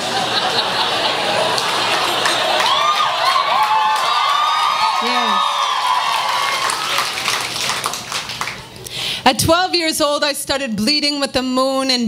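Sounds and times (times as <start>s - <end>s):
audience cheering and clapping: 0.0s - 8.9s
long held whoop: 2.6s - 6.9s.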